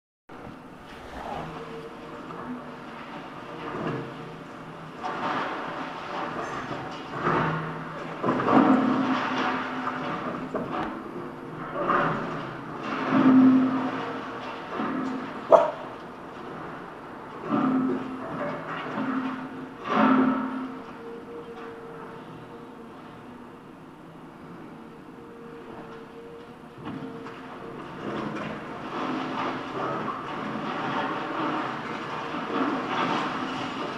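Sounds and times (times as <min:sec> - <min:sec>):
excavator engine and hydraulics: 0:00.3 - 0:33.9.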